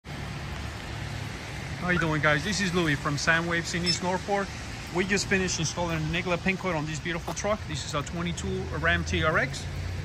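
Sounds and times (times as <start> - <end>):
light rain on wet street: 0.0 - 10.0
man's voice: 1.8 - 9.7.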